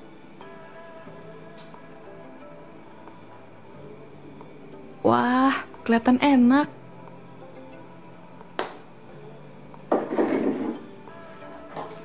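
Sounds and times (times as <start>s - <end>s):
soft background music: 0.0s - 12.0s
bottle clattering set down: 9.9s - 10.9s.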